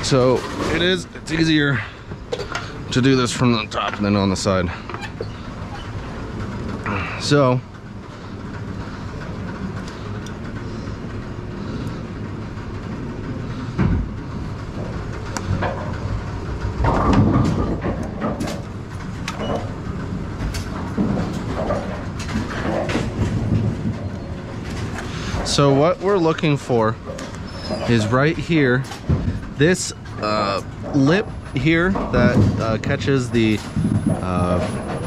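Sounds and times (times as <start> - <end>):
pinsetter machinery rumble and clatter: 0.0 - 35.0.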